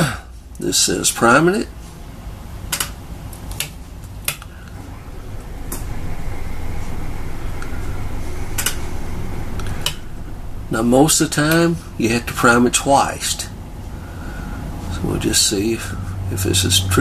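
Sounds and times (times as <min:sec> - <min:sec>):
electric fuel pump humming: 0:02.2 - 0:17.0.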